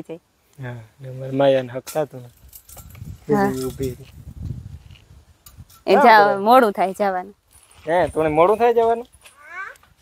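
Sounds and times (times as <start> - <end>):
metallic jingling and clinks: 2.3 - 4.0
person speaking: 3.3 - 3.7.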